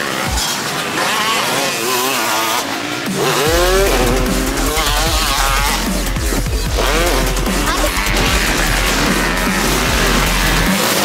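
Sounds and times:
dirt bike engines revving: 0.0s - 11.0s
deep low rumble: 3.5s - 10.7s.

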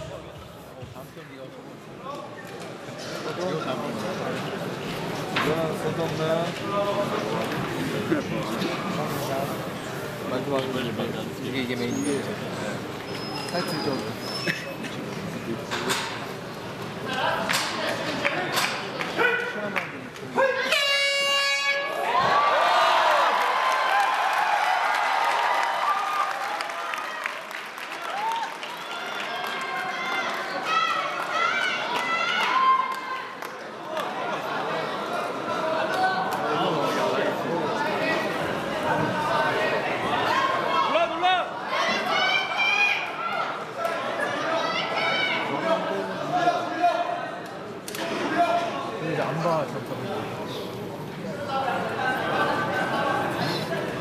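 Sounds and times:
spectators talking: 0.0s - 23.4s, 29.0s - 54.0s
crowd shouting and cheering: 17.1s - 49.1s
horn-like tone: 20.7s - 22.0s.

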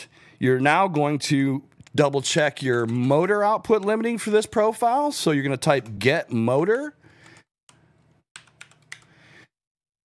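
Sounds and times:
computer keyboard keystrokes: 8.4s - 9.1s.

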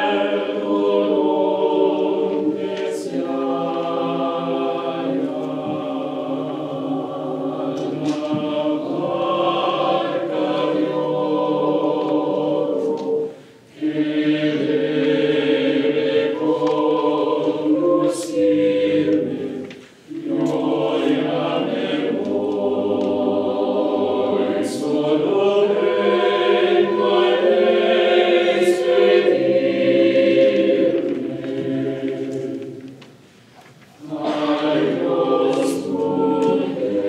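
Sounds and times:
mixed choir singing a cappella: 0.0s - 33.3s, 34.0s - 37.0s
choir breaths: 0.0s - 37.0s.

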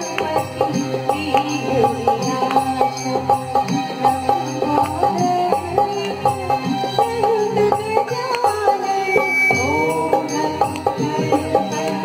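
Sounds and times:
dholak drum rhythm: 0.0s - 12.0s
voices singing melody: 4.4s - 12.0s.

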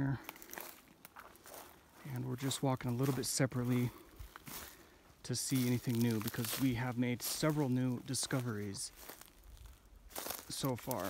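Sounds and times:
man speaking: 0.0s - 0.2s, 2.0s - 4.1s, 5.2s - 9.0s, 10.4s - 11.0s
footsteps on dry forest floor: 0.0s - 11.0s.

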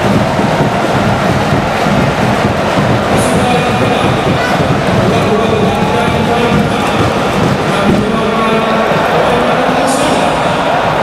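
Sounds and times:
stadium crowd chanting: 0.0s - 11.0s.

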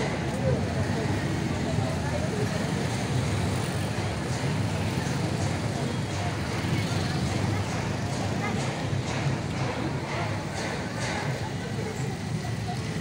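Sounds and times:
crowd talking: 0.0s - 13.0s
motorcycle and car engines rumbling: 0.0s - 13.0s.

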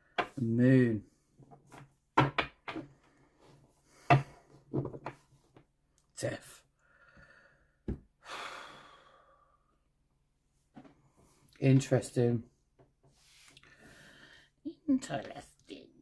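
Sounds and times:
taps and knocks on wooden desk: 1.6s - 2.9s.

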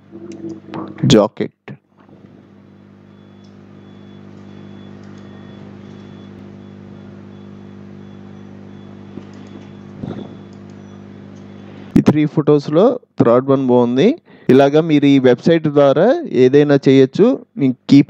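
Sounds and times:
low mechanical motor hum: 0.0s - 12.9s.

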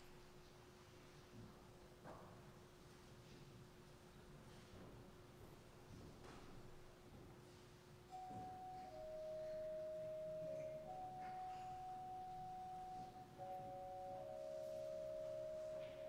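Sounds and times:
soft flute-like organ notes: 8.1s - 16.0s.

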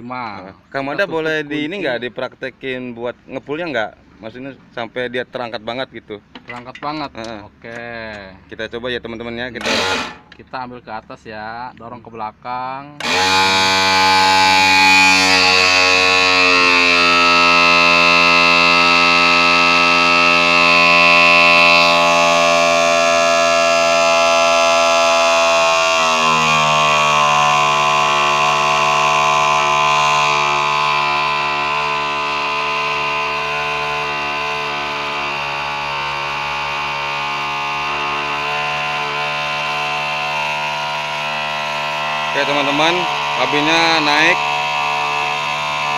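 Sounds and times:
hydraulic pump whine: 6.2s - 10.6s, 12.9s - 45.9s.

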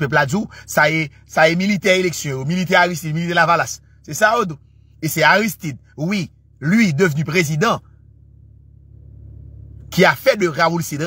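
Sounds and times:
car rumble inside cabin: 0.0s - 11.0s.

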